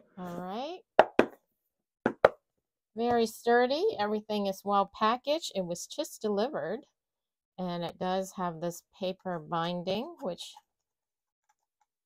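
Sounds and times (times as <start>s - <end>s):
knocks on cardboard box: 2.1s - 2.4s.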